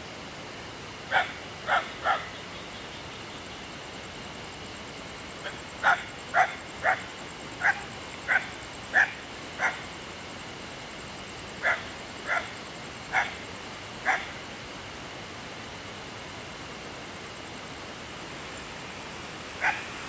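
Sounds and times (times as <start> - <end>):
steady high-pitched whine: 0.0 - 20.0
dog barking: 1.1 - 2.3, 5.8 - 7.0, 7.6 - 9.8, 11.6 - 12.5, 13.1 - 13.4, 14.0 - 14.3, 19.6 - 19.9.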